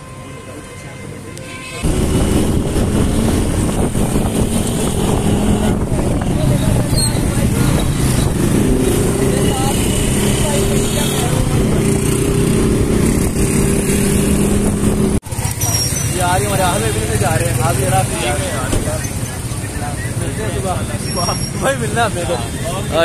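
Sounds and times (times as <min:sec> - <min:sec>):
passing traffic: 0:00.0 - 0:23.0
voices: 0:03.6 - 0:14.2, 0:15.2 - 0:23.0.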